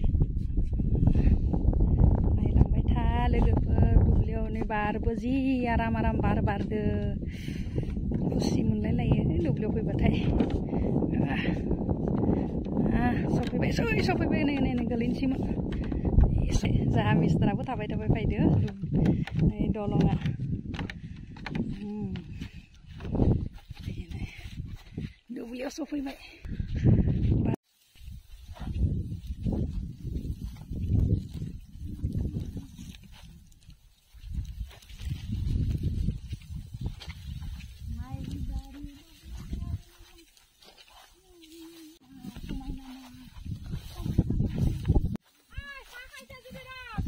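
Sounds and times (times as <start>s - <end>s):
footsteps on bamboo poles: 0.0s - 47.0s
wind buffeting microphone: 0.0s - 47.0s
dry stalks rustling: 27.6s - 47.0s.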